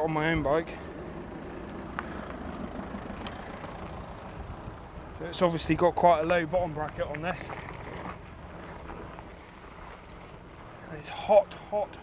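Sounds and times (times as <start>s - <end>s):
wind rushing over microphone: 0.0s - 9.4s
bike tyres rolling on dirt: 0.0s - 12.0s.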